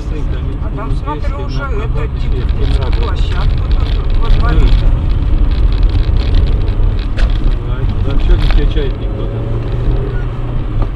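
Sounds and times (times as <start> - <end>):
car engine and tyre rumble: 0.0 - 10.9.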